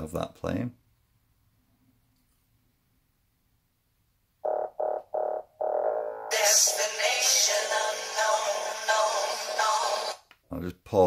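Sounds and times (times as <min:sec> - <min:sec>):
music through small speaker: 0:04.5 - 0:10.2.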